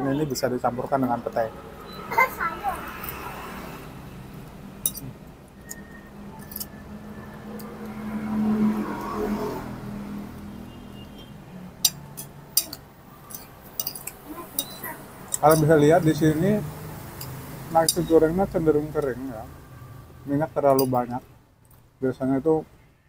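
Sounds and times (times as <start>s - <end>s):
background traffic: 0.0s - 23.0s
metal spoon clinking on plates: 4.8s - 6.8s, 11.8s - 16.2s, 17.1s - 18.2s, 20.7s - 21.1s.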